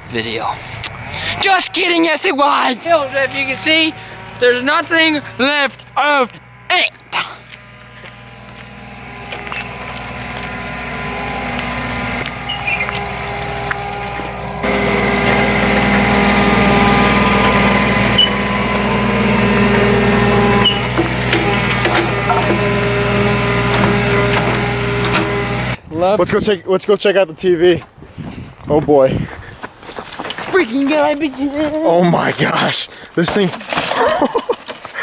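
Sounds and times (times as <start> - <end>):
excavator diesel engine running: 0.0 - 25.8
tracks moving: 0.5 - 25.8.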